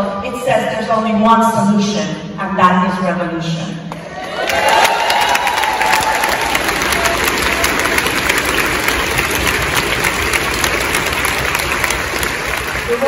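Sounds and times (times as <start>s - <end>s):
audience applauding: 4.2s - 13.0s.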